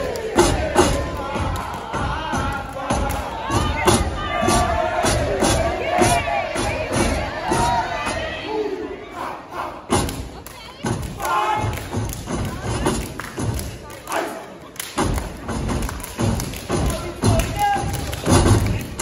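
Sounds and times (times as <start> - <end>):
stomping on a stage: 0.0 - 8.4
crowd noise: 0.0 - 19.0.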